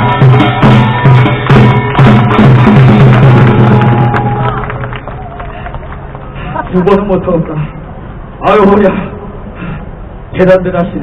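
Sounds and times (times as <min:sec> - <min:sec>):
drum strokes: 0:00.0 - 0:04.4.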